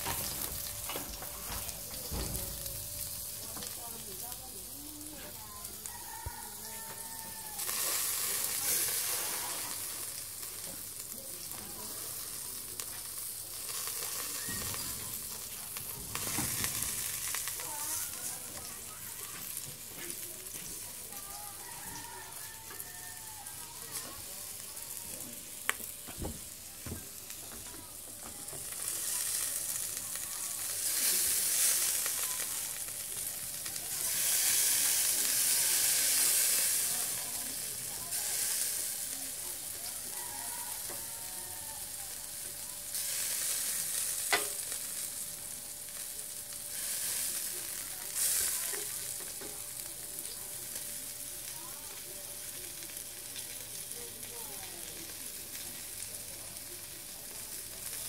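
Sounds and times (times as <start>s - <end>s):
meat sizzling on a grill: 0.0s - 58.0s.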